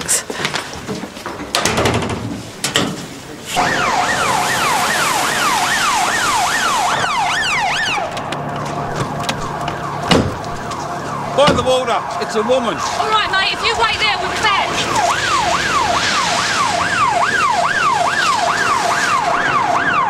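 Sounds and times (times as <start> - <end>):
police siren wailing: 3.5 - 20.0.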